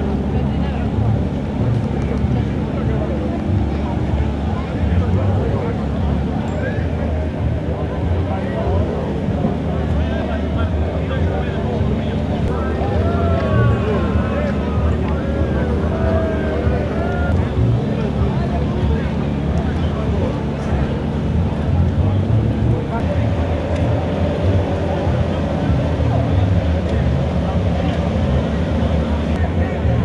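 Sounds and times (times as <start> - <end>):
people talking and calling out: 0.0 - 30.0.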